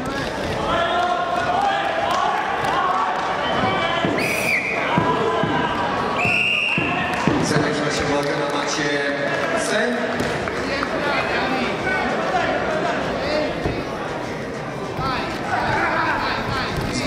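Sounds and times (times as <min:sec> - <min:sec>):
many voices talking: 0:00.0 - 0:17.0
referee whistle blasts: 0:03.5 - 0:04.9, 0:06.2 - 0:07.0.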